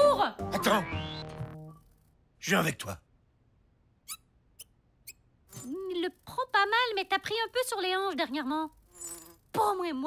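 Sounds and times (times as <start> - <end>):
high-pitched cartoon squeaks: 4.0 - 6.7.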